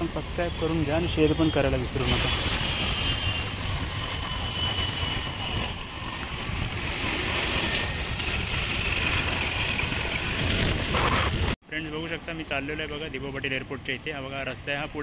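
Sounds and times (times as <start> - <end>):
motorbike and tyres on road: 0.0 - 11.6.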